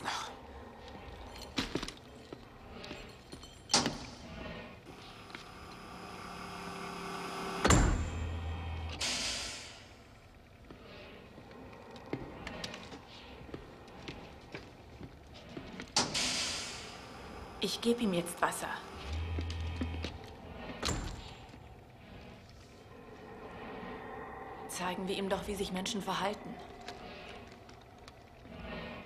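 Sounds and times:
rising hum: 4.9s - 10.5s, 18.8s - 28.7s.

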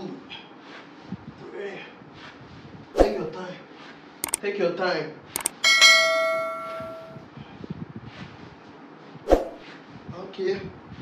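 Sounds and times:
mouse clicks: 5.4s - 5.6s
bell-like ding: 5.4s - 7.2s.

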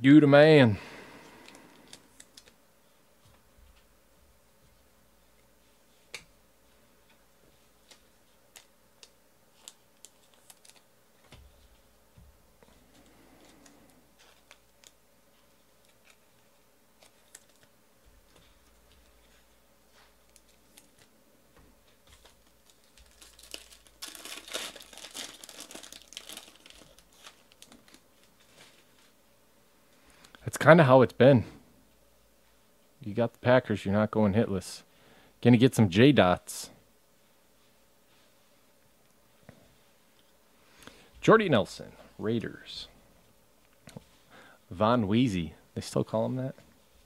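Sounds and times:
foil wrapper tearing and crinkling: 9.5s - 10.8s, 22.2s - 28.3s.

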